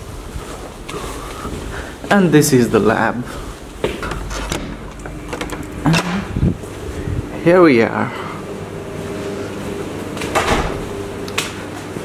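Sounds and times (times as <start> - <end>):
microphone handling rumble: 3.6 - 7.5.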